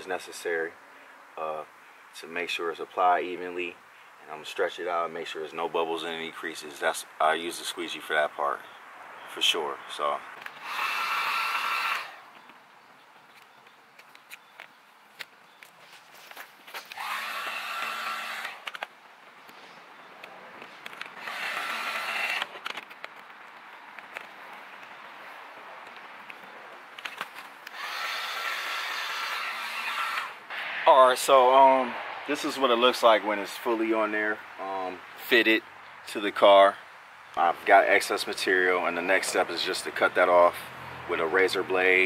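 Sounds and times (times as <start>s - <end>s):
heat gun fan whine and rushing air: 10.6s - 12.2s, 16.9s - 18.8s, 21.2s - 22.6s, 27.6s - 30.8s.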